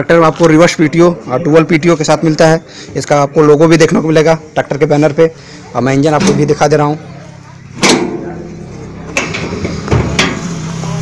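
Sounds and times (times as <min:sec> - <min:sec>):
sheet metal panel clunk: 0:07.8 - 0:08.4.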